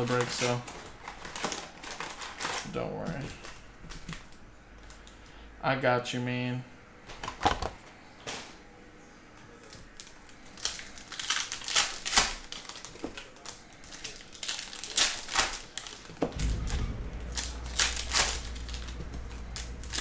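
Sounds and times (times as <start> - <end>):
cards rustling: 0.0 - 5.2
foil wrappers crinkling and tearing: 0.0 - 5.3, 9.6 - 16.6, 17.8 - 20.0
low steady hum: 16.3 - 20.0.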